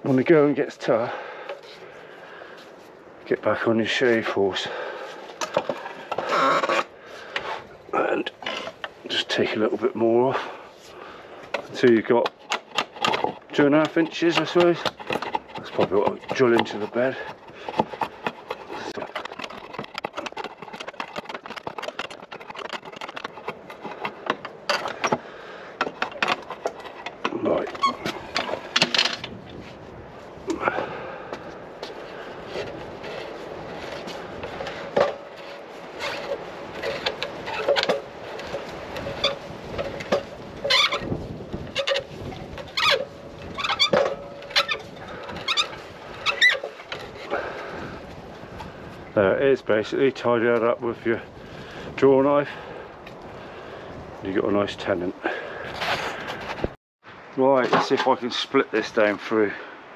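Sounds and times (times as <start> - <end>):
drawknife scraping wood: 5.4 - 7.7, 11.5 - 29.3, 31.8 - 47.7
wood twisting through jig: 5.4 - 9.7, 11.0 - 29.4, 31.9 - 48.8.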